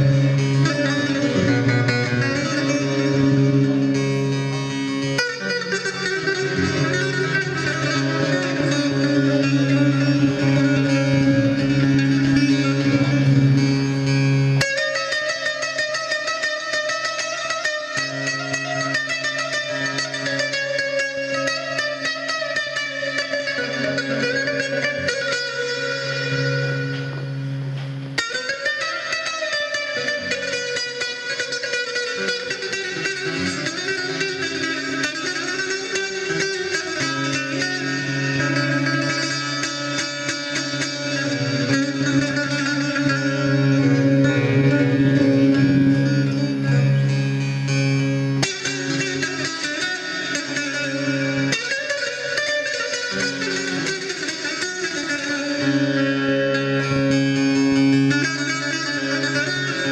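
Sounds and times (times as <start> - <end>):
long-necked lute fast picking: 0.0 - 59.9.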